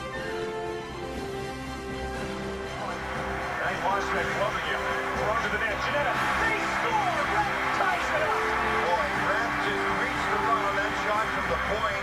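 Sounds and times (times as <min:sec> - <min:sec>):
background music with held notes: 0:00.0 - 0:12.0
crowd shouting and yelling: 0:02.8 - 0:12.0.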